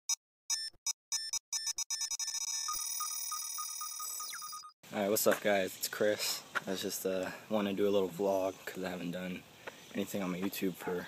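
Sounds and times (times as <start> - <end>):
pulsing beep: 0.5 - 4.8
short electronic beeping: 0.5 - 4.8
continuous high electronic tone: 1.1 - 4.8.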